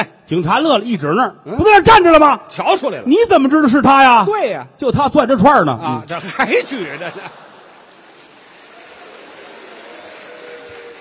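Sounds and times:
audience applauding: 0:07.1 - 0:11.0.

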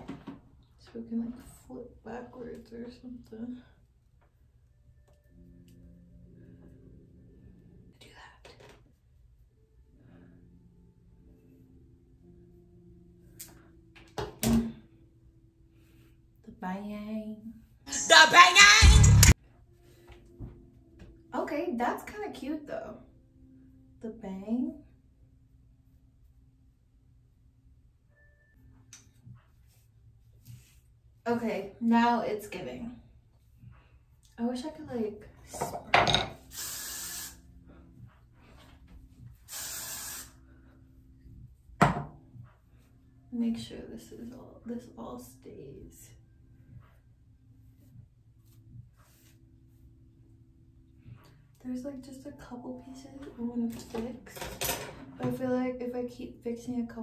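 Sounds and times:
aerosol spray hissing: 0:36.5 - 0:37.4, 0:39.5 - 0:40.4.

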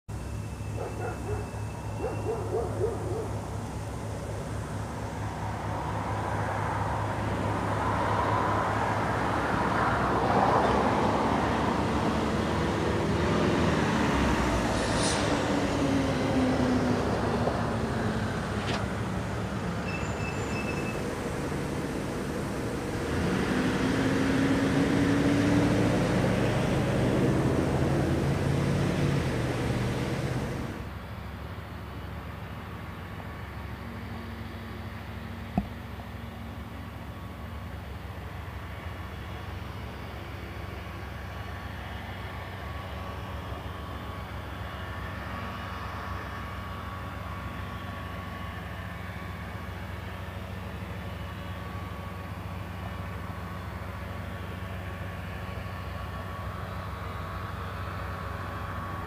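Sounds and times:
road traffic passing: 0:00.1 - 0:59.0.

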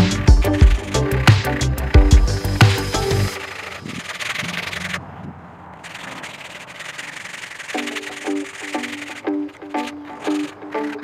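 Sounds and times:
sandpaper rubbing on wood: 0:05.8 - 0:09.4.

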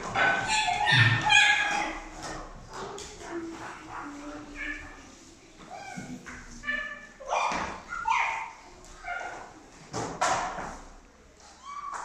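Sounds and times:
children yelping like animals: 0:00.2 - 0:02.0.

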